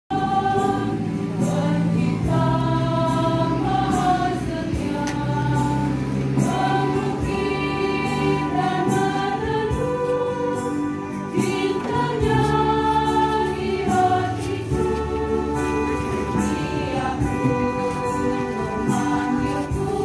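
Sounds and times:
church choir singing a hymn: 0.1s - 20.0s.

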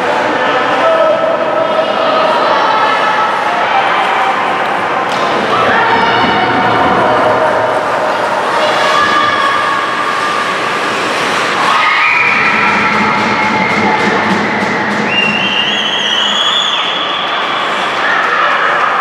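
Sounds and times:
ice rink game and spectators din: 0.0s - 19.0s.

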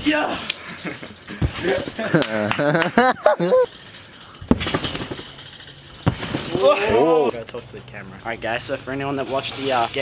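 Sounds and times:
metallic rattle of springs: 3.5s - 7.3s
thump on trampoline: 4.5s - 5.2s, 6.0s - 7.2s.

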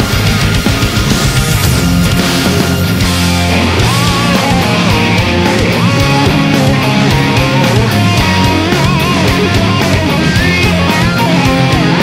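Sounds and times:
driving drum beat: 0.0s - 12.0s
rock band with electric guitars: 0.0s - 12.0s.

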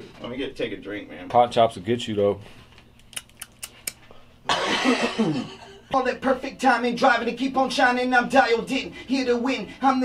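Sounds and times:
man laughing breathily: 4.8s - 5.9s.

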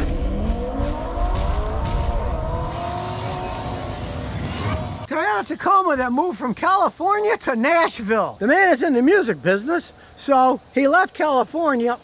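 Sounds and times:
car engine revving: 0.0s - 5.1s.

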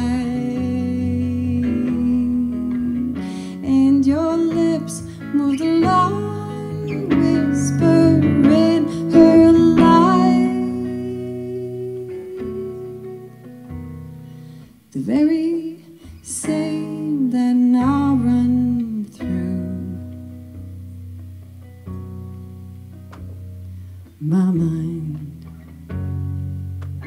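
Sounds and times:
woman singing: 0.0s - 13.6s, 14.9s - 20.7s, 24.2s - 25.6s
acoustic guitar: 0.0s - 27.0s.

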